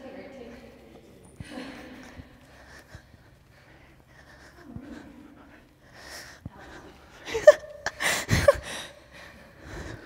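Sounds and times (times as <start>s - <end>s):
woman breathing hard: 1.4s - 10.0s.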